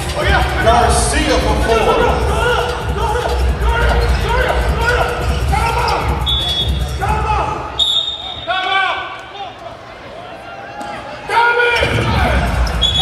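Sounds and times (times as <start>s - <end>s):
voices: 0.0s - 13.0s.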